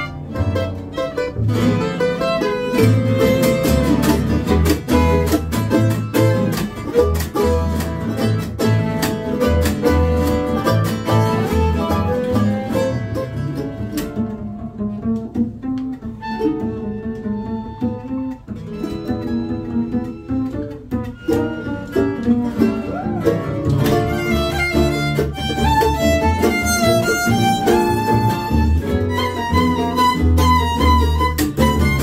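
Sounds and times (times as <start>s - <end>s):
fiddle: 0.0s - 14.4s, 15.9s - 32.0s
nylon-string guitar: 0.0s - 32.0s
upright bass: 0.0s - 32.0s.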